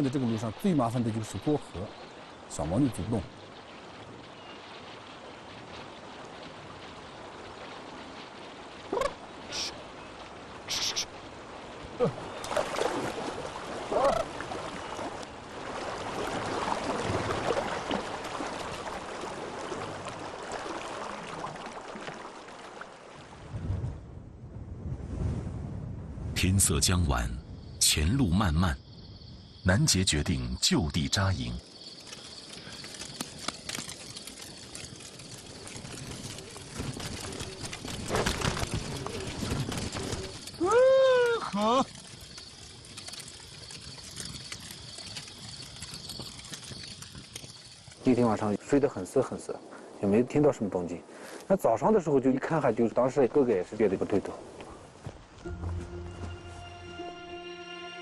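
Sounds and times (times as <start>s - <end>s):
shallow river running: 0.0s - 58.0s
campfire crackling: 0.8s - 23.6s, 28.8s - 50.1s.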